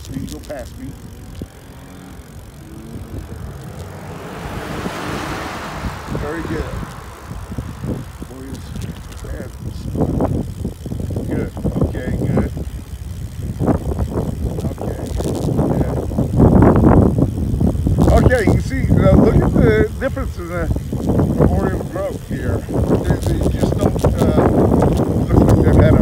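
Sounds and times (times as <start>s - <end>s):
road noise of passing truck: 0.0s - 25.5s
wind buffeting microphone: 0.0s - 26.0s.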